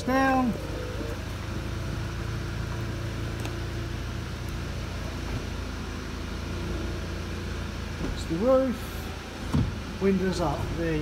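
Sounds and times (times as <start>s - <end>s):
car engine idling: 0.0s - 11.0s
convertible roof motor hum: 0.0s - 11.0s.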